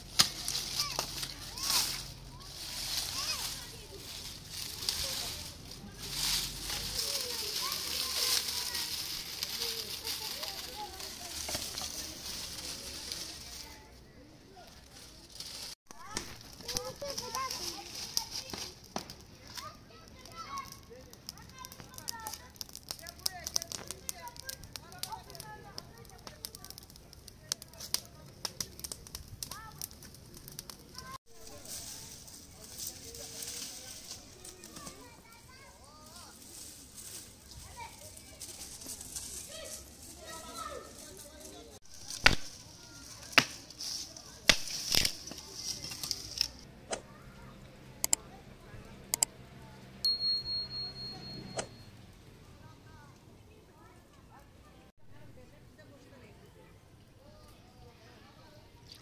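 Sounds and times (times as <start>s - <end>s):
fire crackling and snapping: 0.0s - 13.9s, 14.6s - 46.7s
leaves rustling: 0.0s - 48.8s
faint voices and children: 0.0s - 59.0s.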